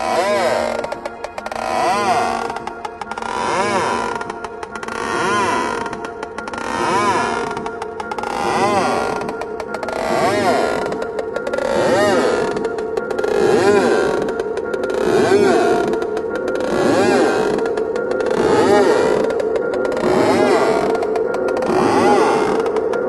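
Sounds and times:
psychedelic trance music: 0:00.0 - 0:23.0.

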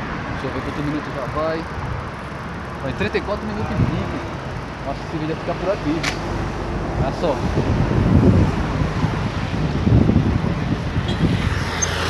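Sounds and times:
road traffic passing: 0:00.0 - 0:12.0
wind buffeting microphone: 0:03.0 - 0:04.7, 0:06.2 - 0:12.0.

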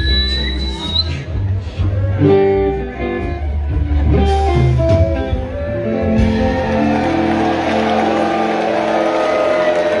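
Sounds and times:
rock band sustained chords: 0:01.6 - 0:10.0.

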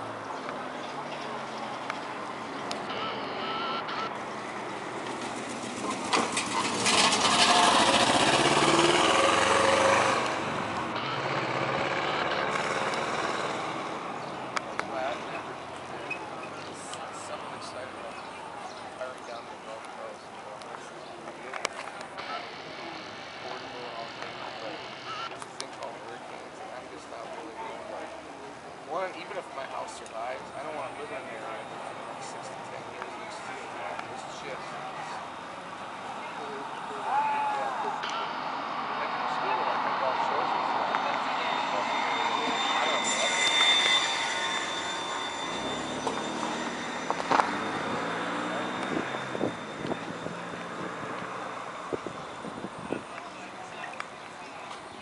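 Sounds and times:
distant people talking: 0:00.0 - 0:55.0
indistinct voices: 0:05.8 - 0:54.9.

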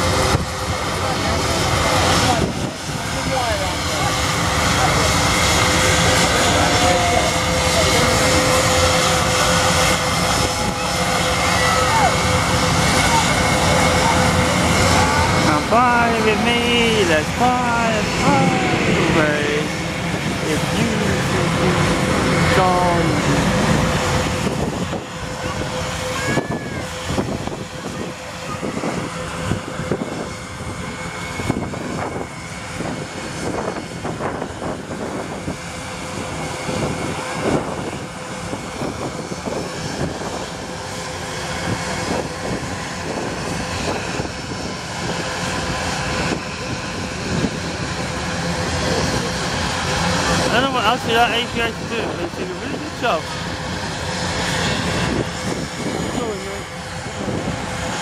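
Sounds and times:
aircraft engines whining: 0:00.0 - 0:58.0
voices: 0:00.8 - 0:29.0, 0:48.7 - 0:53.4.

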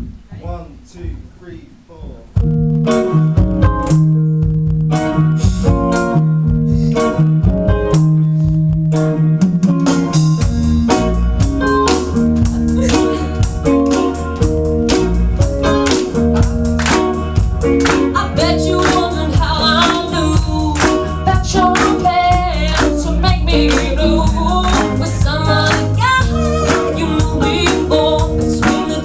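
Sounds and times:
live rock band playing: 0:02.3 - 0:29.0
electric guitar stop-start chords: 0:02.4 - 0:29.0.

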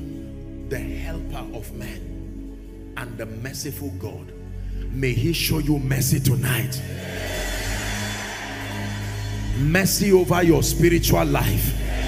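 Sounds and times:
soft music of held low tones: 0:00.0 - 0:12.0.

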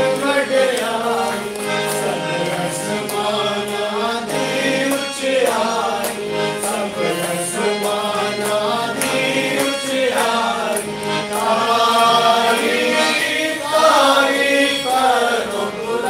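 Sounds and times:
harmonium: 0:00.0 - 0:16.0
men singing worship song: 0:00.0 - 0:16.0.

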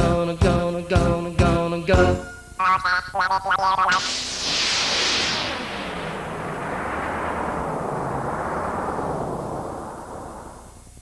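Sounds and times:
whooshing sound effect: 0:03.8 - 0:11.0.

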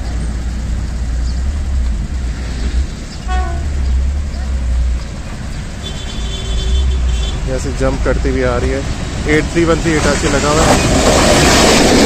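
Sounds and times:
diesel train approaching: 0:00.0 - 0:12.0
low rumble of engines: 0:00.0 - 0:12.0
train horn: 0:03.2 - 0:03.8.

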